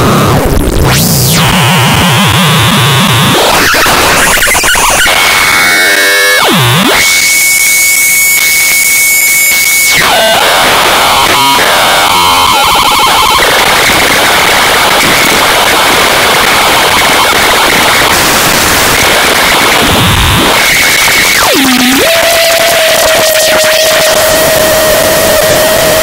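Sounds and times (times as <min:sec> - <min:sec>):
synthesizer tone swooping: 0:00.0 - 0:10.4
harsh synthesizer noise: 0:00.0 - 0:26.0.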